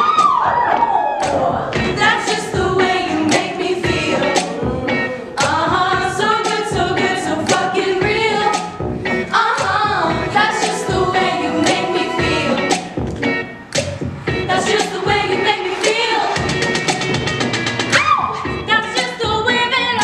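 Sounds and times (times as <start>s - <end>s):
women singing pop song: 0.0s - 13.1s, 14.3s - 16.6s, 17.9s - 20.0s
steady beat: 0.0s - 19.5s.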